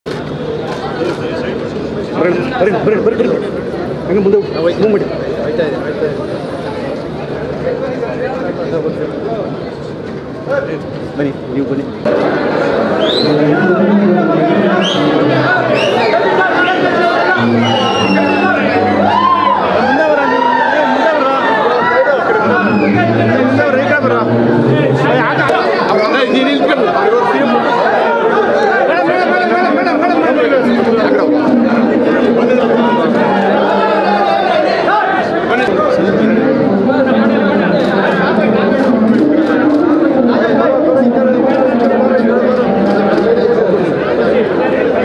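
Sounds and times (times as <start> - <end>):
crowd chatter: 0.0 - 45.0.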